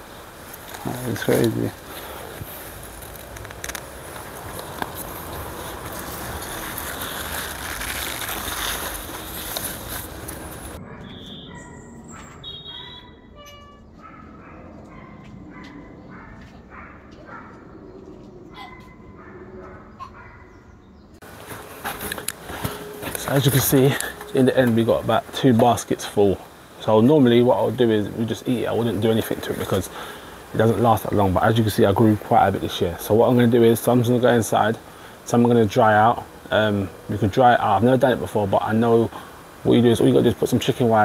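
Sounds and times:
soil and leaves rustling: 0.0s - 12.8s, 21.2s - 41.0s
birds chirping: 8.8s - 41.0s.

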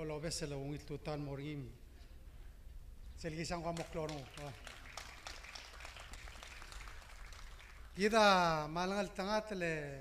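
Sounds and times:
scattered audience applause: 3.7s - 8.2s.

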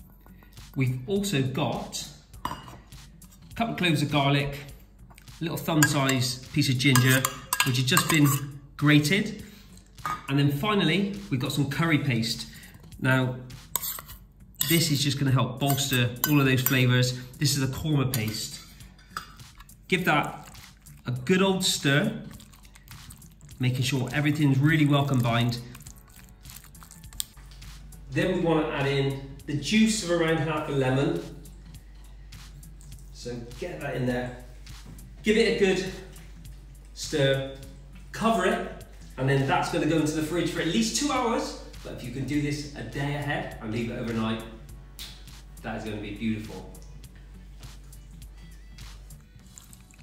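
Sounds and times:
faint background music: 0.0s - 50.0s
spatula stirring wet food: 13.5s - 15.1s, 18.2s - 27.4s.

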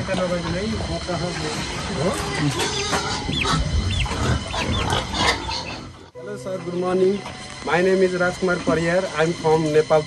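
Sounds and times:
pigs chirping: 0.0s - 6.2s
pigs grunting: 0.0s - 6.2s.

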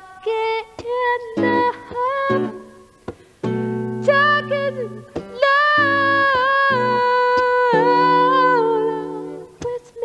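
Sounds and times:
strummed acoustic guitar: 0.8s - 9.9s
woman singing long note: 4.0s - 10.0s.

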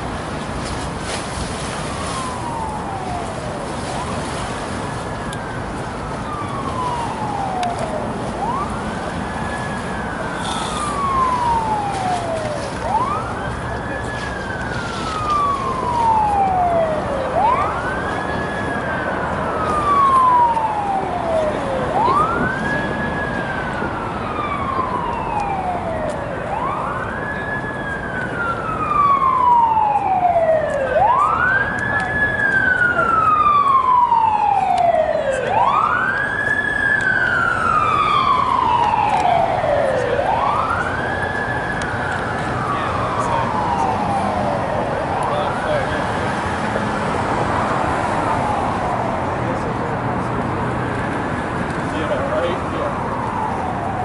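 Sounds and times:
emergency siren wailing: 1.3s - 54.0s.

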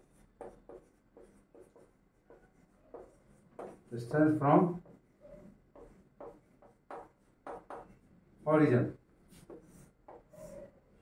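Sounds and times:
chalk scratching on blackboard: 0.0s - 8.1s, 9.3s - 10.8s.

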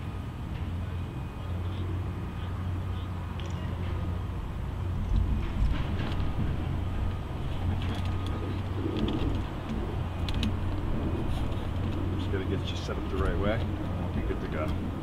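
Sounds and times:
road traffic rumble: 0.0s - 15.0s
dove-like coo: 0.9s - 4.2s, 7.5s - 15.0s.

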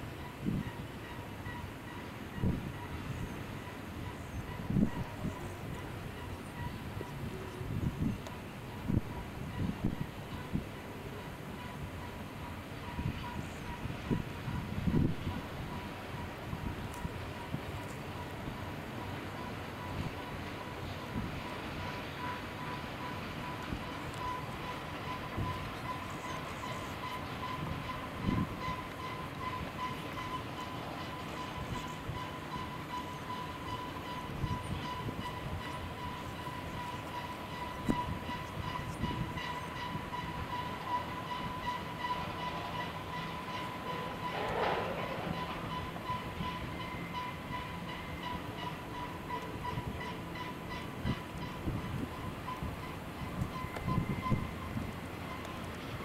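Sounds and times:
freight train moving: 0.0s - 56.0s.

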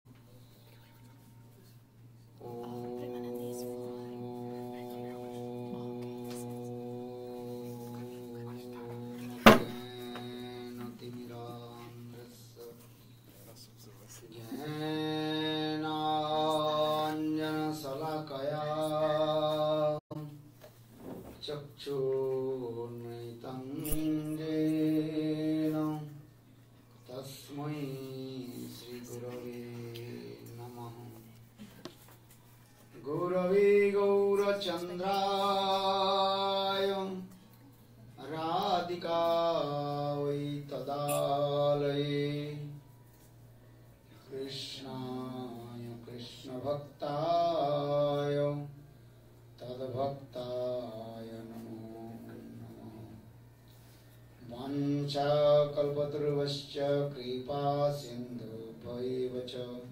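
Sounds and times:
person chanting a long syllable: 2.4s - 12.8s, 14.3s - 20.4s.

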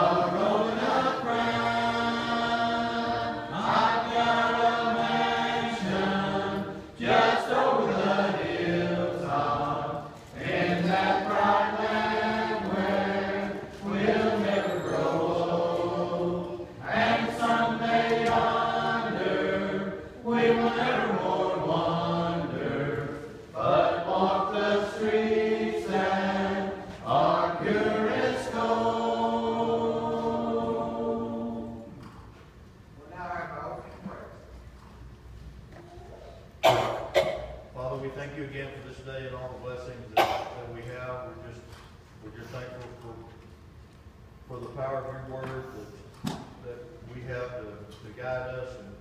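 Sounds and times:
congregation singing a hymn: 0.0s - 32.4s, 36.6s - 41.5s.

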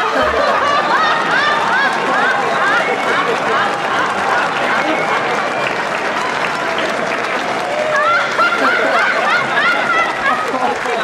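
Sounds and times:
audience laughter: 0.0s - 11.0s.

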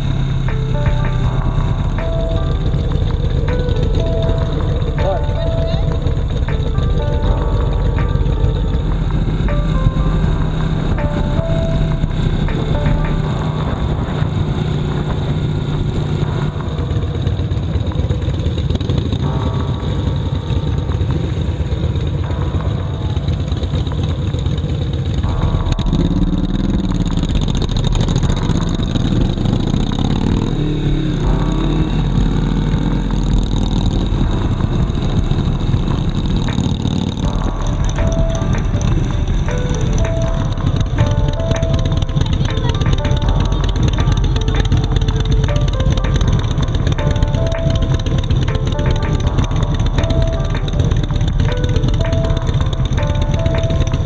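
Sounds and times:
motorcycle engines running: 0.0s - 54.0s
music playing: 0.0s - 54.0s.

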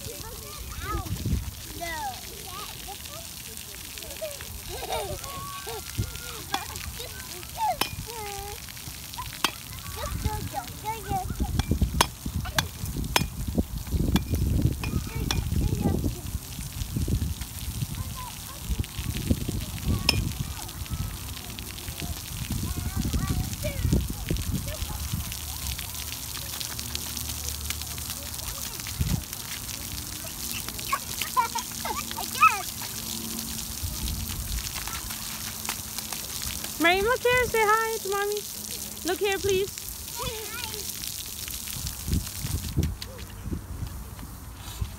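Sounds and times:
water spraying on wet concrete: 0.0s - 44.9s
wind rumble on microphone: 0.9s - 1.7s, 10.0s - 25.9s, 28.8s - 29.4s, 33.5s - 35.0s, 41.6s - 44.9s.

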